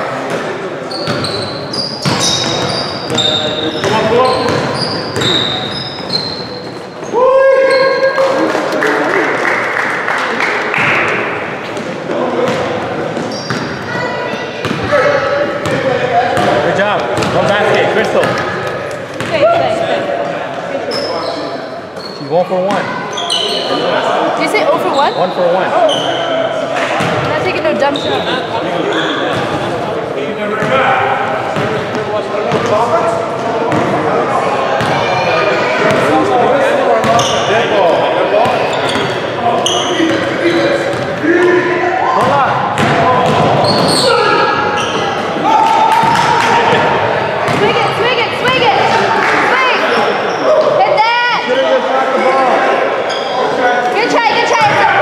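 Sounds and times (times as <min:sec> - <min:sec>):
sneakers squeaking: 0:00.0 - 0:08.2, 0:10.8 - 0:29.9, 0:30.6 - 0:34.0, 0:34.6 - 0:51.7, 0:53.0 - 0:55.0
players calling out: 0:00.0 - 0:55.0
basketball bouncing: 0:03.8 - 0:05.4, 0:14.6 - 0:14.9, 0:15.6 - 0:17.5, 0:19.2 - 0:19.6, 0:42.2 - 0:43.9, 0:45.9 - 0:48.8, 0:54.6 - 0:54.8.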